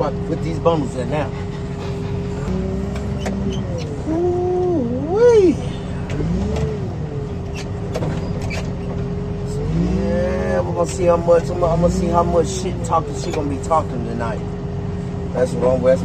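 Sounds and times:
heavy machine engine running: 0.0 - 15.3.

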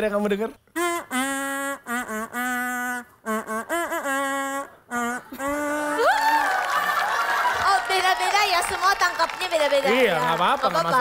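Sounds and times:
toy trumpet buzzy notes: 0.8 - 6.0
people laughing: 5.4 - 8.3.

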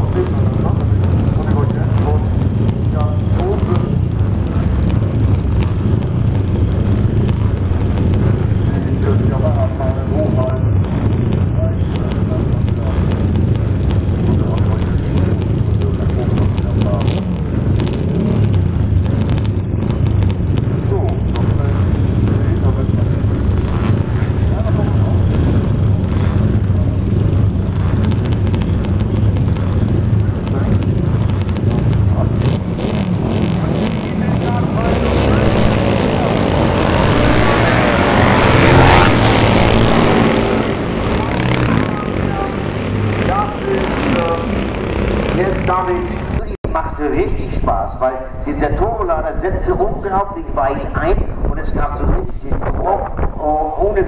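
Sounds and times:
racing motorcycle engines droning: 0.0 - 54.0.

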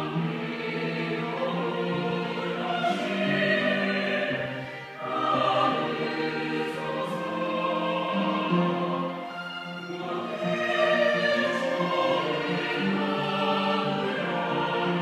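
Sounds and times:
choir singing a hymn: 0.0 - 15.0
violins: 0.0 - 15.0
flute: 2.6 - 15.0.

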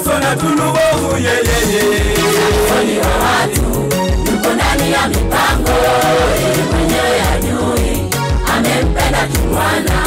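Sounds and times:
band with drum beat: 0.6 - 10.0
choir singing gospel: 1.0 - 10.0.

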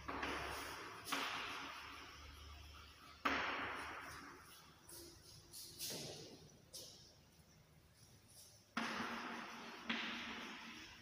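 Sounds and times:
chalk writing on chalkboard: 4.0 - 7.0.

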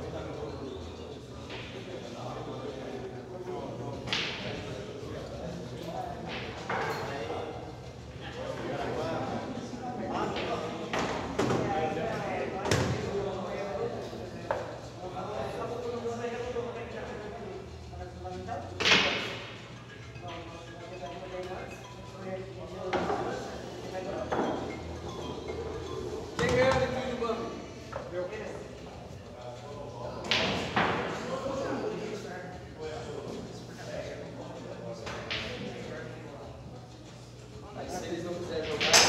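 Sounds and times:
background chatter: 0.0 - 39.0
men talking: 0.0 - 39.0.

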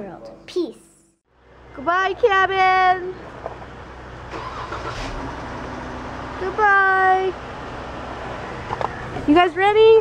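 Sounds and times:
car engine starting and idling: 2.3 - 10.0.

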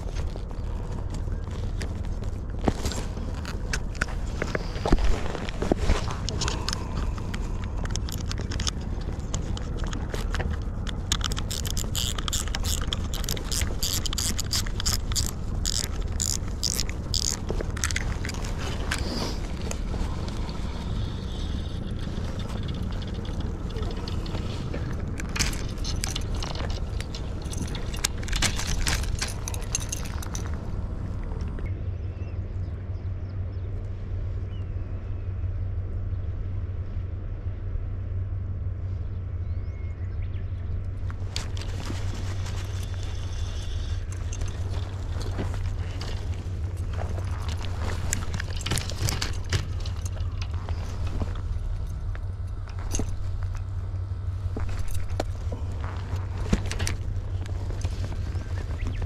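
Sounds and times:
steady low rumble: 0.0 - 59.0
fishing reel clicking and rattling: 6.3 - 19.8, 20.4 - 30.5.

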